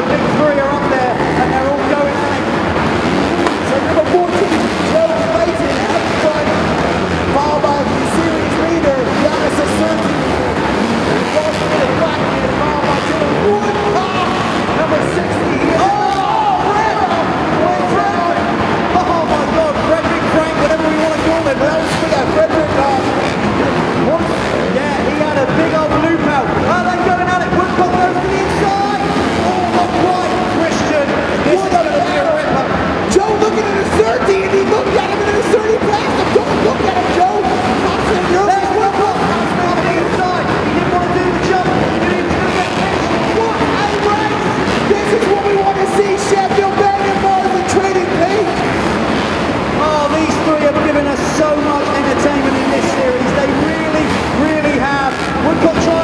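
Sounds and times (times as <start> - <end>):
speech: 0.0 - 2.6, 3.4 - 48.9, 49.7 - 56.0
dirt bike engines revving: 0.0 - 56.0.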